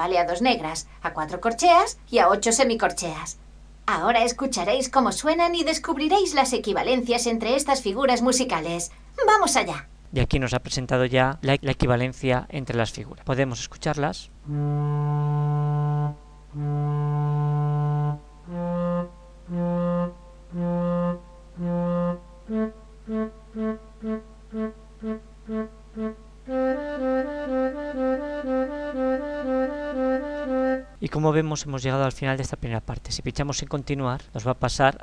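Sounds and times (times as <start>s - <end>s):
wind instrument repeated notes: 14.5s - 31.0s.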